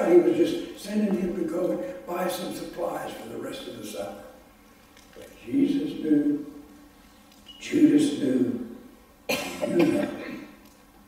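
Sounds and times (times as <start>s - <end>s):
man coughing: 9.3s - 10.6s.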